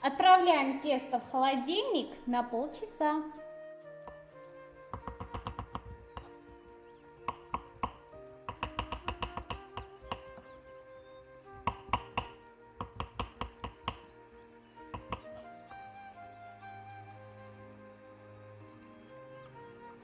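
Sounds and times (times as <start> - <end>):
background music: 0.0 - 20.0
knife chopping on wooden board: 5.0 - 6.4, 7.3 - 10.4, 11.6 - 14.1, 15.0 - 15.4.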